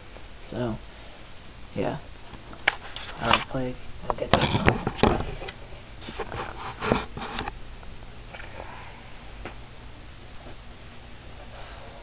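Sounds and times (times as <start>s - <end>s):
low steady hum: 0.0s - 12.0s
camera handling bumps and rustles: 4.2s - 7.6s.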